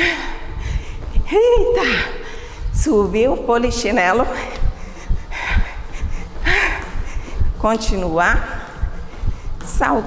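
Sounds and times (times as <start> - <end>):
woman breathing hard: 0.0 - 2.8, 4.4 - 7.6, 8.5 - 9.6.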